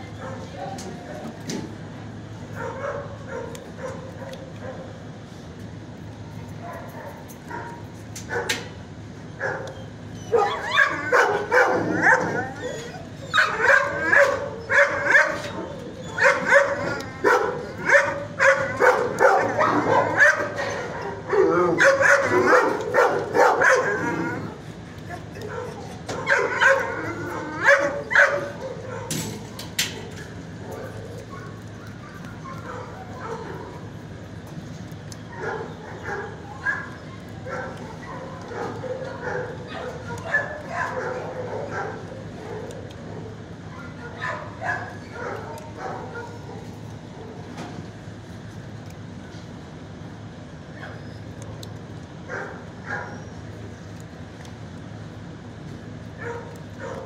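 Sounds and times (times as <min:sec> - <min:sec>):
dogs barking and yipping: 0:02.4 - 0:05.1, 0:06.5 - 0:08.7, 0:09.3 - 0:48.1, 0:50.4 - 0:54.5, 0:56.1 - 0:57.0.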